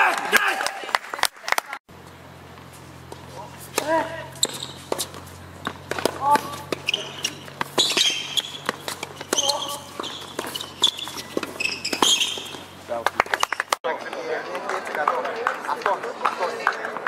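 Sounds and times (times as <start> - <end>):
tennis balls struck and bouncing: 2.0 - 13.8
shoes squealing on court: 2.6 - 13.8.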